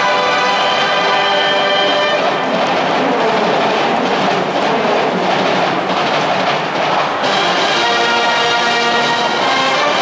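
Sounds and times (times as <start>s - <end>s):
brass band roar: 0.0s - 10.0s.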